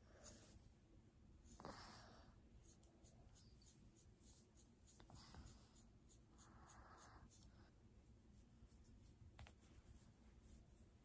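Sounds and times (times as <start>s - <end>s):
fingertips rubbing hair and scalp: 1.4s - 11.0s
comb scratching through hair: 2.6s - 7.5s.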